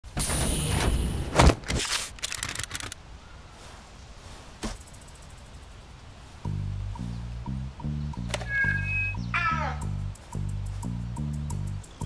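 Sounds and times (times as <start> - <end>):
rapid sharp cracks: 1.5 - 3.0.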